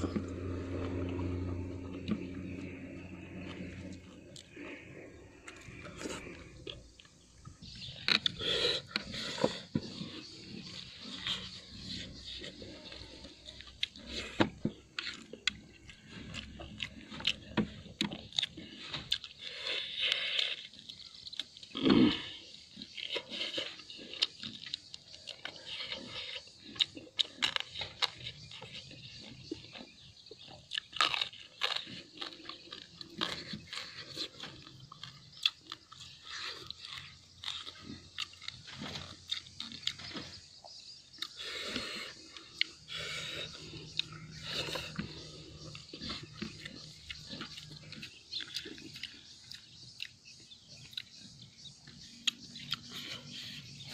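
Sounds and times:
man chewing and crunching food: 0.0s - 53.9s
mouth clicks: 41.1s - 51.2s.

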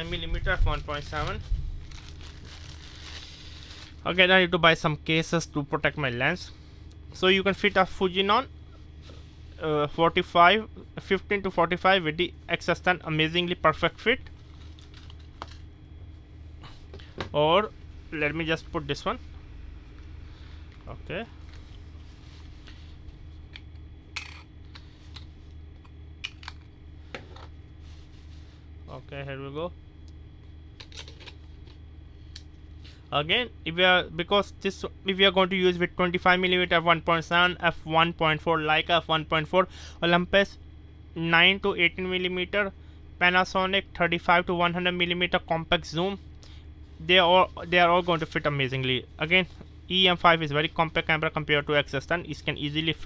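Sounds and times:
plastic bag and tissue crinkling: 0.0s - 4.2s, 14.2s - 15.7s.

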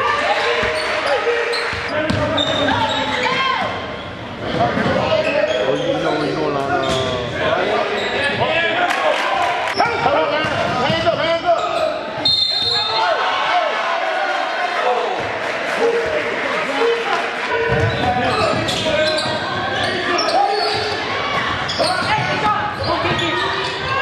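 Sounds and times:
basketball bouncing on court: 1.7s - 2.4s, 17.7s - 19.4s.

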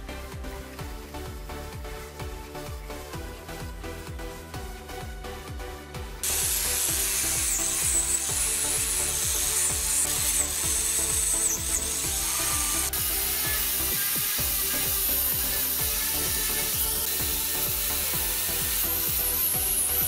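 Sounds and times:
angle grinder grinding metal: 6.2s - 20.0s.

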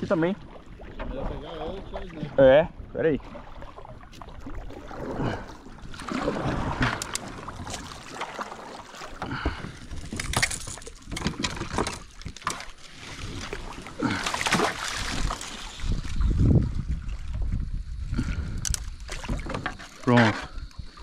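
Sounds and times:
water sloshing against hull: 0.0s - 21.0s
kayak paddle strokes: 3.2s - 17.6s
paddle knocking against boat: 6.0s - 12.7s, 19.1s - 20.6s.

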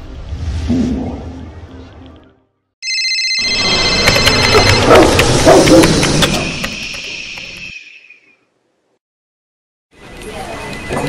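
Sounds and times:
telephone ringing: 2.8s - 5.1s
dog barking: 4.6s - 6.6s.

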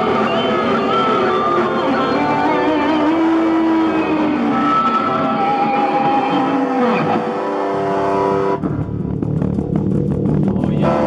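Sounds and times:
distorted electric guitars: 0.0s - 11.0s
drums: 0.0s - 11.0s.

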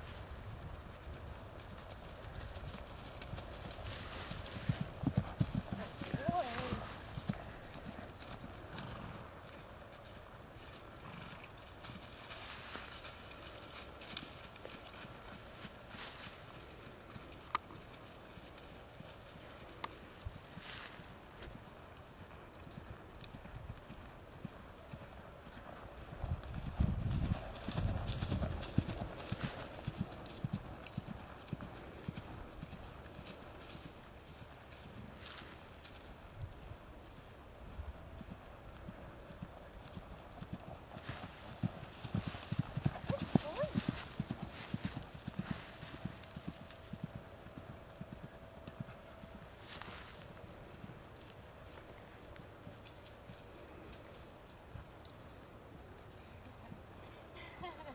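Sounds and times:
horse hoofbeats on grass: 0.0s - 55.1s.

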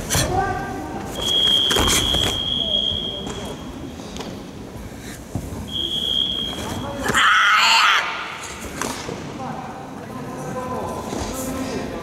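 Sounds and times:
loud shout: 7.0s - 8.4s.

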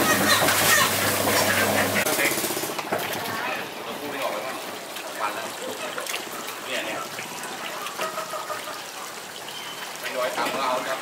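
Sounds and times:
water splashing: 0.0s - 11.0s.

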